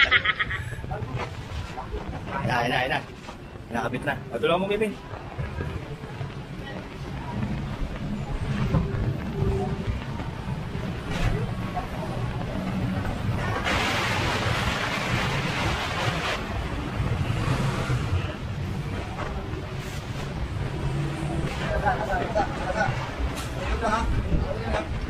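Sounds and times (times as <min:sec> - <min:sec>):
low street rumble: 0:00.0 - 0:25.0.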